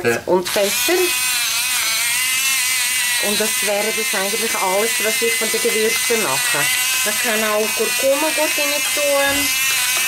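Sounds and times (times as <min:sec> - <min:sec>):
electric pepper mill grinding: 0:00.5 - 0:10.0.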